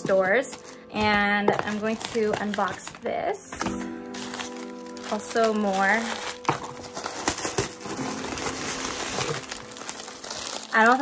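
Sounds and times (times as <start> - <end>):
paper wrapping crinkling: 0.0 - 11.0.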